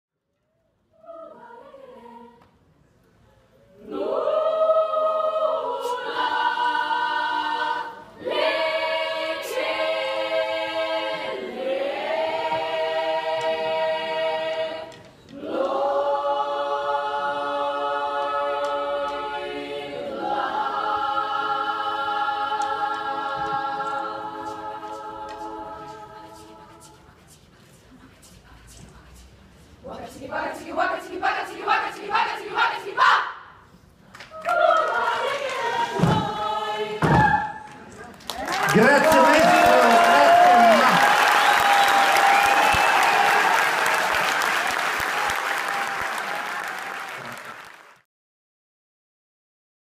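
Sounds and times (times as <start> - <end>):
choir singing a cappella: 0.9 - 38.1
choir chanting shouted syllables: 29.8 - 33.5, 38.7 - 43.6.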